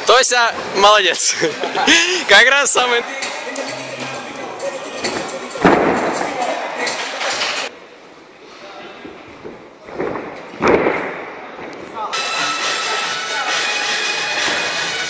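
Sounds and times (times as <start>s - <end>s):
gym chatter: 0.8s - 10.6s, 11.2s - 15.0s.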